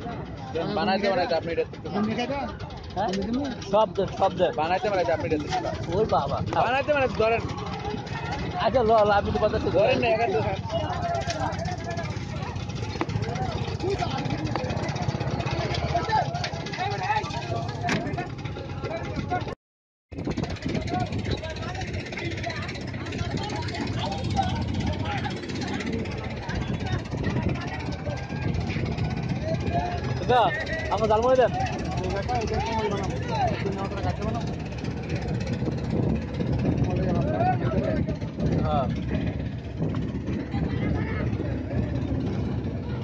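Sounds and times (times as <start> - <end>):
street traffic noise: 0.0 - 19.4, 20.2 - 43.0
people's voices: 0.0 - 19.6, 20.2 - 43.0
engine idling: 0.0 - 43.0.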